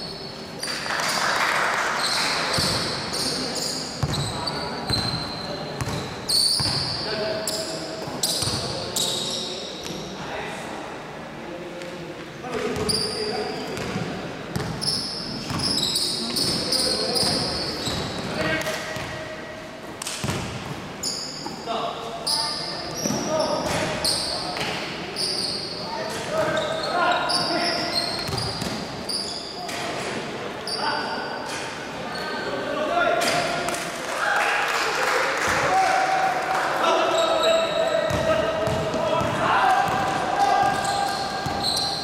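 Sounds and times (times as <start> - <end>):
sneaker squeaks: 0.0 - 1.2, 2.0 - 10.2, 12.6 - 19.2, 20.2 - 32.7, 37.0 - 42.0
basketball bouncing on wood court: 4.0 - 5.2, 5.8 - 7.0, 13.8 - 14.8, 20.2 - 20.8, 28.1 - 28.8, 38.1 - 41.8
players calling out: 35.4 - 42.0.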